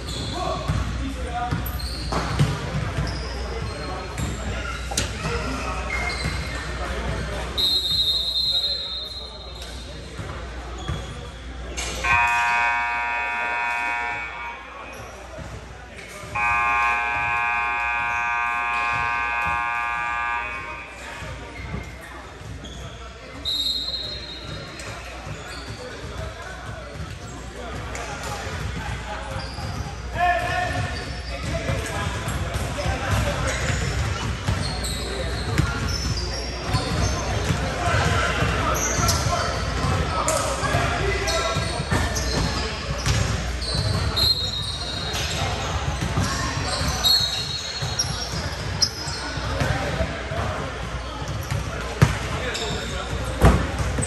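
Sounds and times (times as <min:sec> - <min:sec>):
players' voices echoing: 0:00.0 - 0:54.0
sneaker squeaks: 0:00.0 - 0:54.0
scoreboard buzzer: 0:12.0 - 0:14.6, 0:16.4 - 0:21.0.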